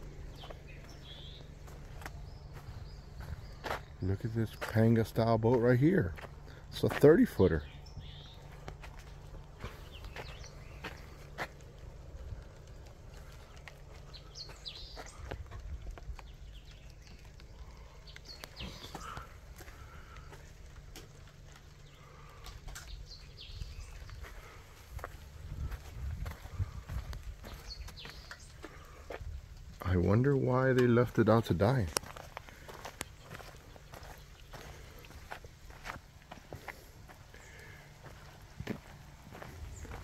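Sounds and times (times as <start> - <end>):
faint footsteps: 0.0 - 30.0, 30.6 - 40.0
low steady rumble: 0.0 - 40.0.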